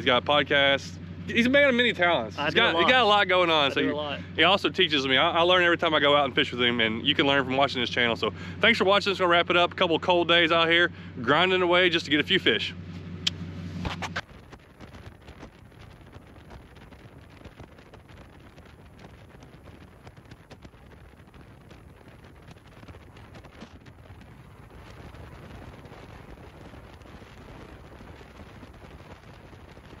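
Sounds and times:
wind buffeting microphone: 14.0s - 30.0s.

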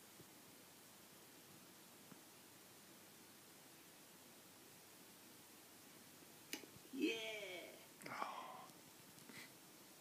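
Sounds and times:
faint room hiss: 0.0s - 10.0s
person whispering: 7.0s - 8.8s.

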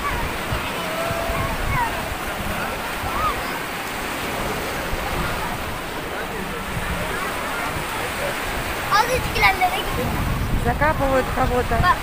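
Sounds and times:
faint crowd chatter: 0.0s - 12.0s
small waves washing on sand: 0.0s - 12.0s.

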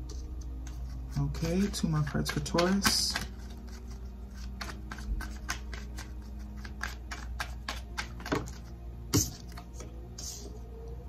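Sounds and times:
cards being shuffled: 0.0s - 10.5s.

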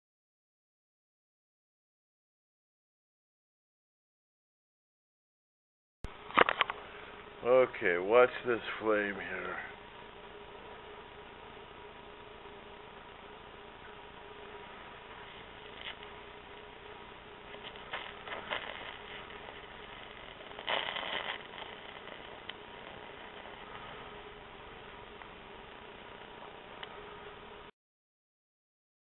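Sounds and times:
low hum: 6.1s - 27.7s
torch flame hissing: 14.0s - 26.9s.

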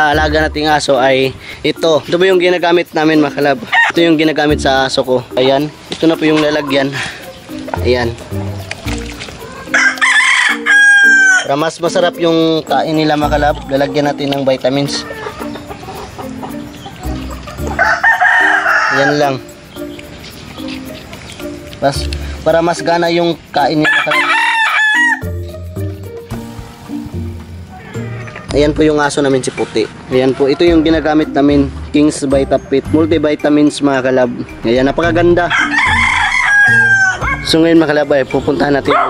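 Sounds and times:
soft background music: 0.0s - 39.0s
rooster crowing: 3.7s - 4.0s, 9.4s - 11.5s, 17.5s - 19.5s, 23.8s - 25.4s, 27.7s - 28.5s, 30.4s - 31.5s, 35.5s - 37.5s.

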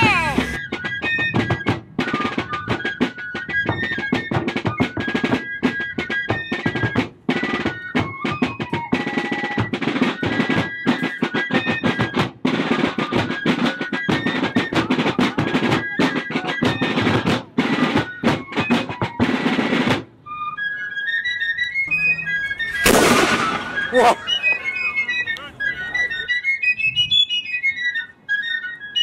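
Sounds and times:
high fife melody: 0.0s - 0.6s, 20.8s - 27.4s
snare drum rolls: 22.7s - 24.2s
cannon blast: 22.8s - 23.9s.

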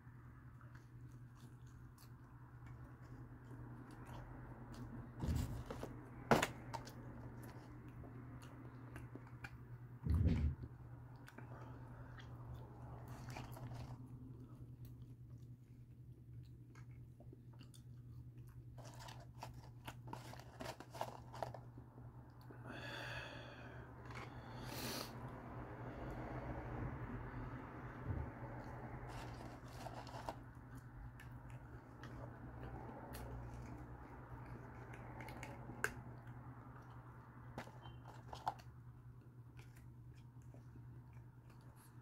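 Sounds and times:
chewing fries: 0.2s - 23.2s, 27.9s - 42.0s.

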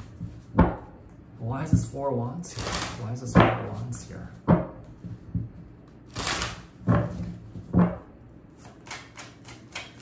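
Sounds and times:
cards being shuffled: 2.5s - 3.0s, 6.1s - 6.8s.

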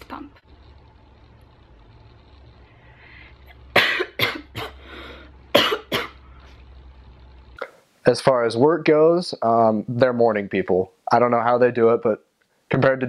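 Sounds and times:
low hum: 0.0s - 9.1s.

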